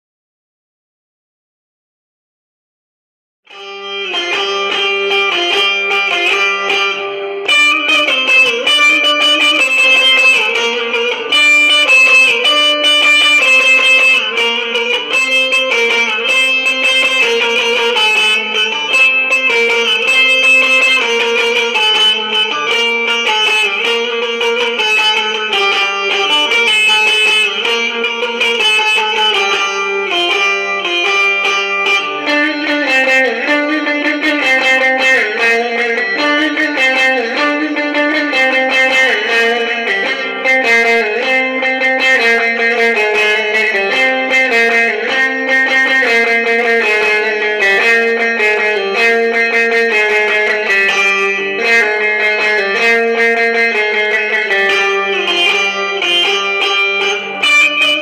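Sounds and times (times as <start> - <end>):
long-necked lute plucked melody: 3.5 - 58.0.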